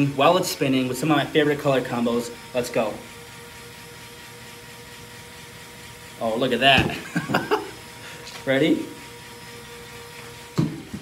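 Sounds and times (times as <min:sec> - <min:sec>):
motor whirring hum: 0:00.0 - 0:11.0.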